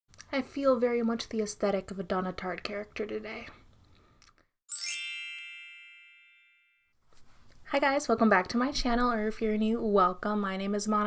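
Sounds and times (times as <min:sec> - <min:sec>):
bright chime ding: 0:04.7 - 0:06.8.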